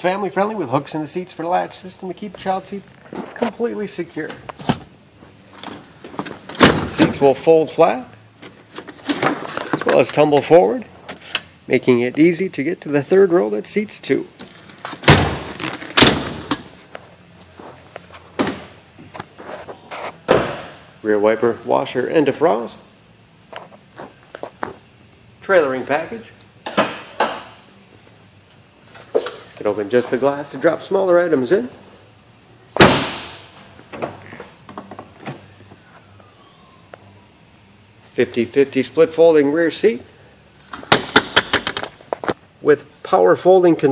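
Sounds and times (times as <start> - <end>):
car door slamming: 32.8 - 33.4.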